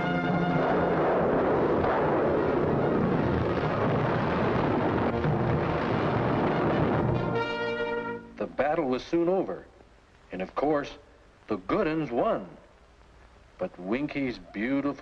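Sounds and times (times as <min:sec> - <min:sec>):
orchestral music with brass: 0:00.0 - 0:01.2, 0:05.1 - 0:08.4
explosions: 0:00.0 - 0:08.8
cannon fire: 0:00.4 - 0:08.0.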